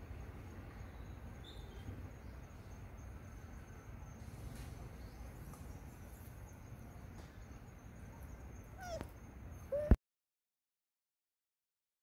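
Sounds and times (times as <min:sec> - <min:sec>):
faint low background noise: 0:00.0 - 0:10.0
macaque high call: 0:08.8 - 0:09.1, 0:09.7 - 0:10.0.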